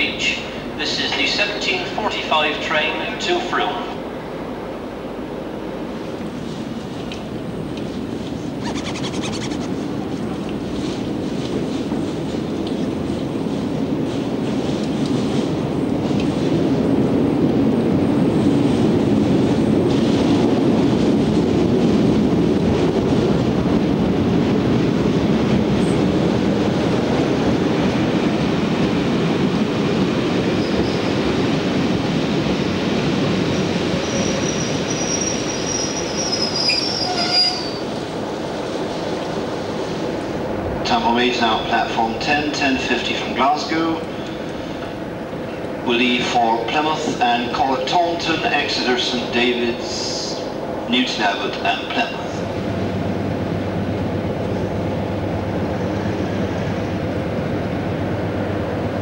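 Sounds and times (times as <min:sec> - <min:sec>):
high-pitched wheel squeal: 0:08.6 - 0:09.8, 0:34.0 - 0:37.8
diesel locomotive engine running: 0:51.7 - 0:59.0.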